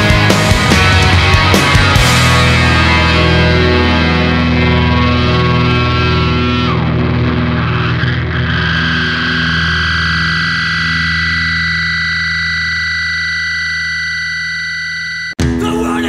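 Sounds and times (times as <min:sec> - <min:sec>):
distorted guitar chord: 0:00.0 - 0:16.0.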